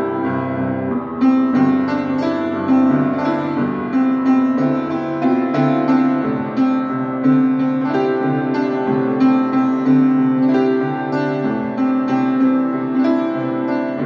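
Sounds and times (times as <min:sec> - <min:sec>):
piano chords: 0:00.0 - 0:14.0.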